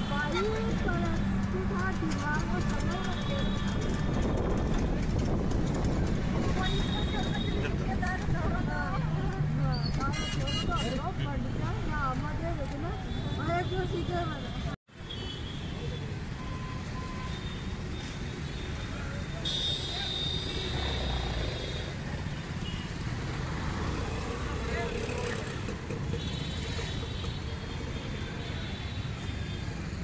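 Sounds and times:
motorbike and car engines passing: 20.4 - 27.8.

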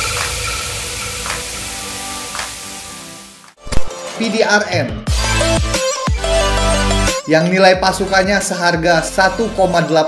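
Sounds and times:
electronic transition hiss: 0.0 - 3.5.

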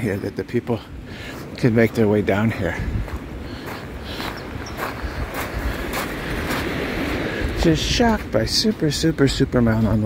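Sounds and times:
wind rumble on microphone: 0.0 - 10.0
footsteps on sand and pebbles: 1.4 - 10.0.

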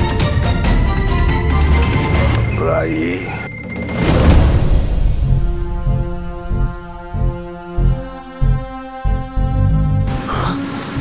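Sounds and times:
tense dramatic music: 0.0 - 11.0.

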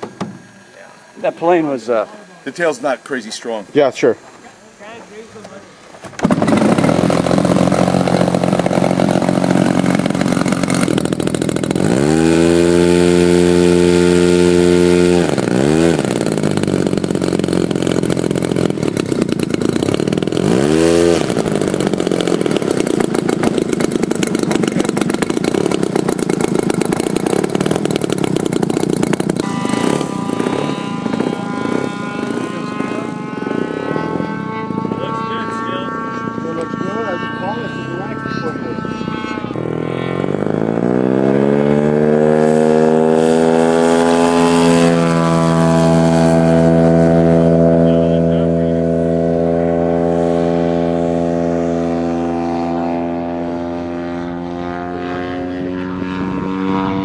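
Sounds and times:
model plane engine running: 0.0 - 57.0.

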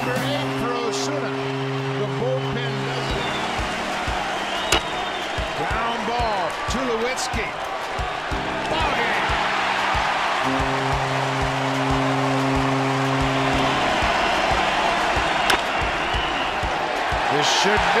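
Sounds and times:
background music with steady beat: 0.0 - 18.0
stadium crowd cheering: 0.0 - 18.0.

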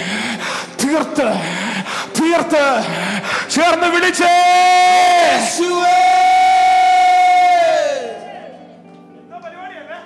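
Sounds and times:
man singing long high note: 3.7 - 8.5.

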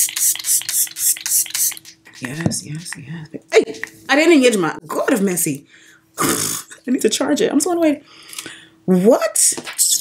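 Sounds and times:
spray bottle hissing: 0.0 - 2.3
faint steady hum: 0.0 - 10.0.

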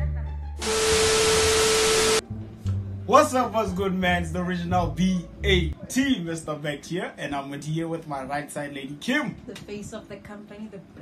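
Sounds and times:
low background music: 0.0 - 11.0
static hiss: 0.6 - 2.2
steady beep tone: 0.6 - 2.2.

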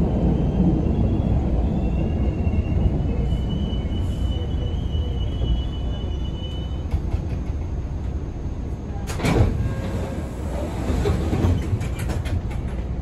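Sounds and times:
subway car low rumble: 0.0 - 13.0.

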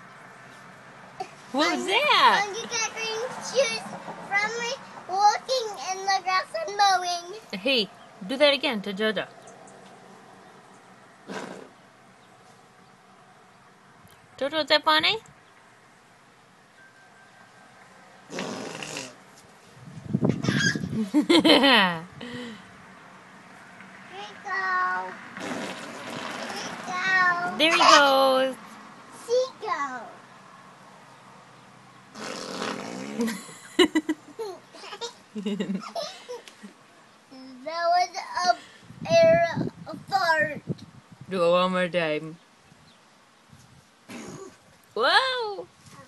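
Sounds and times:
person blowing a raspberry: 11.3 - 11.7, 18.3 - 19.2, 25.4 - 26.7, 32.2 - 33.5, 44.1 - 44.6.

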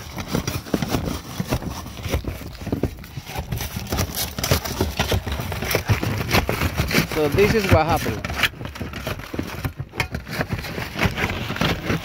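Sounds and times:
footsteps on a shingle roof: 0.0 - 12.0.

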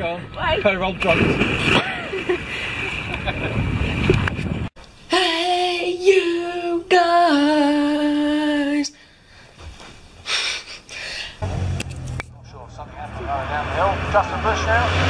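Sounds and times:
boy singing long notes: 5.1 - 8.9.

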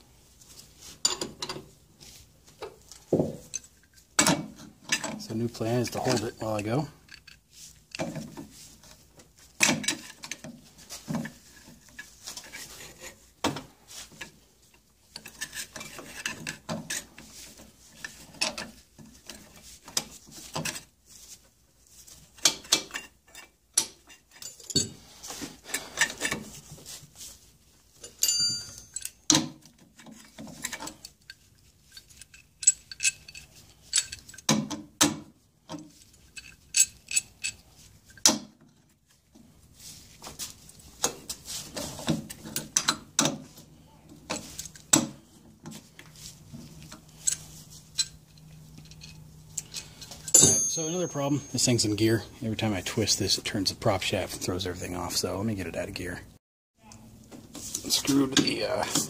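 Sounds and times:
ringing metal clink: 28.1 - 29.2, 50.3 - 51.8
wrench clanking on metal: 48.8 - 51.7.

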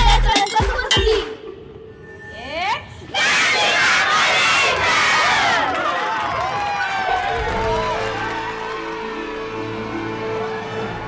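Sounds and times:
music: 0.0 - 3.0, 7.0 - 11.0
children cheering and shouting: 3.2 - 11.0.

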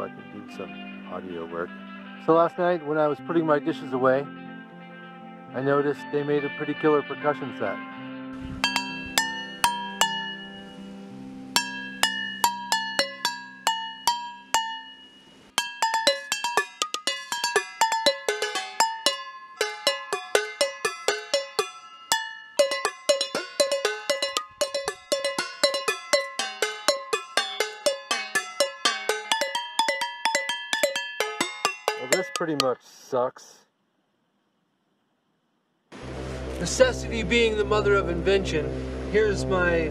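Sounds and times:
guitar chord: 8.3 - 13.4, 36.0 - 39.9
metal dishes struck with sticks: 8.4 - 10.8, 11.5 - 32.7.

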